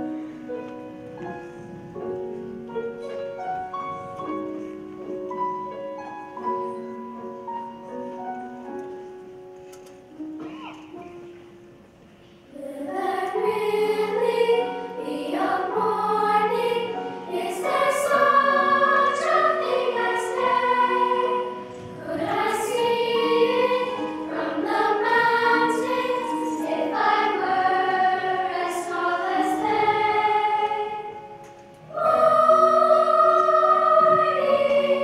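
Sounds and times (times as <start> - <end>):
piano accompaniment: 0.0 - 35.0
children's choir singing: 12.4 - 35.0.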